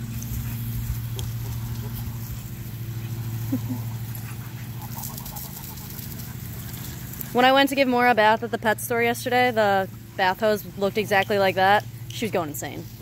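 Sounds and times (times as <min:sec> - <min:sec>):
dogs snapping and playing: 0:00.0 - 0:07.8
steady low hum: 0:00.0 - 0:13.0
water hissing from hose: 0:00.0 - 0:13.0.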